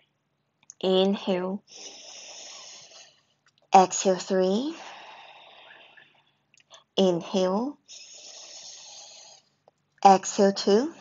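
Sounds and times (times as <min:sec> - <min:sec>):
person breathing in: 0:01.7 - 0:03.2, 0:04.8 - 0:06.0, 0:07.9 - 0:09.4.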